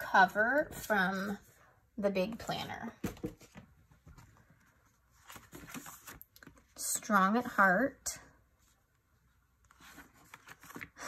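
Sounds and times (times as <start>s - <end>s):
paper page turning: 5.1s - 6.6s, 9.6s - 11.0s.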